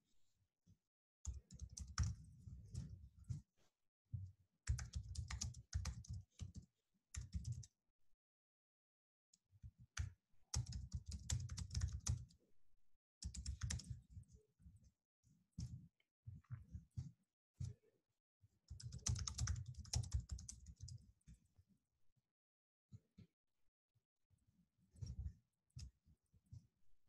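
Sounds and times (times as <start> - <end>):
typing on computer keyboard: 1.3 - 2.2, 4.7 - 6.6, 7.2 - 7.7, 10.5 - 12.3, 13.2 - 13.9, 18.7 - 21.0.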